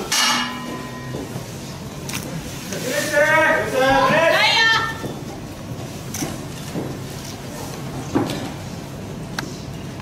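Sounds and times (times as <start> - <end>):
ring bell struck: 0.1 - 1.3
person shouting: 3.2 - 5.0.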